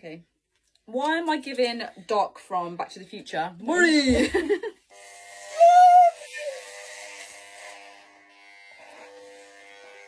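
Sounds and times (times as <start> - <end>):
electric hair clippers buzzing: 4.1 - 10.0
person saying ooh: 5.6 - 6.5.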